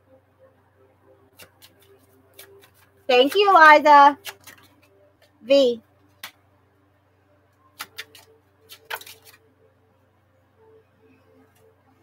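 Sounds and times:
faint steady hum: 0:00.0 - 0:12.0
playing cards snapping: 0:01.4 - 0:03.5, 0:04.2 - 0:04.7, 0:07.8 - 0:09.4.

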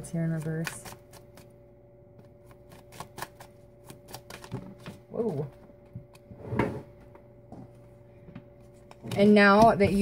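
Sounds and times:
faint steady hum: 0:00.0 - 0:10.0
cards being shuffled: 0:02.2 - 0:05.2.

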